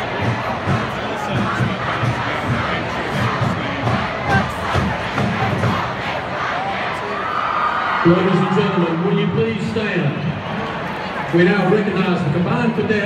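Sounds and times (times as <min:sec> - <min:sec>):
steady drum beat: 0:00.0 - 0:06.8
marching band: 0:00.0 - 0:07.2
stadium crowd cheering: 0:00.0 - 0:13.0.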